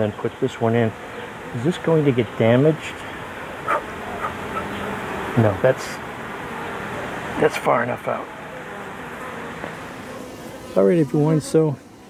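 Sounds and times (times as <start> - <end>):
honey bees buzzing: 0.0 - 12.0.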